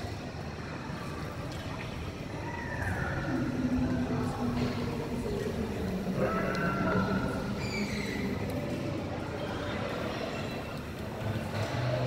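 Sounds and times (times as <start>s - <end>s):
low rumble of hall noise: 0.0s - 12.0s.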